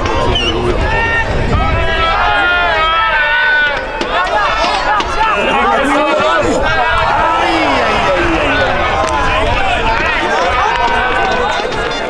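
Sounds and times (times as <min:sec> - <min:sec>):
wind rumble on microphone: 0:00.0 - 0:05.4, 0:06.2 - 0:12.0
players calling and shouting: 0:00.0 - 0:12.0.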